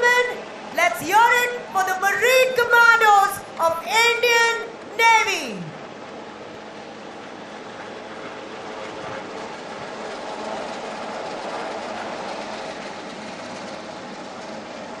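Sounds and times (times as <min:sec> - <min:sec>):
helicopter rotor and engine drone: 0:00.0 - 0:15.0.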